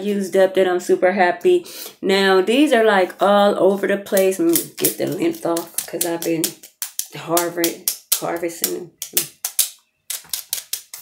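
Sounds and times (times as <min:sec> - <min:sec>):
pencils clicking together: 0:04.1 - 0:11.0.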